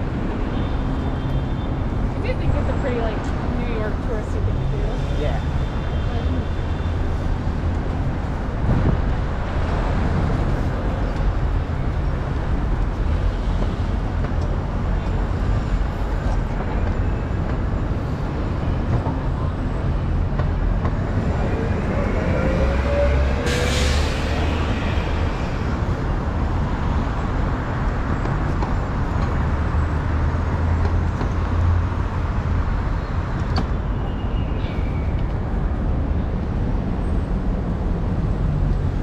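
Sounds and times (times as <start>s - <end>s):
traffic driving past: 0.0s - 39.0s
bus engine rising: 19.5s - 27.7s.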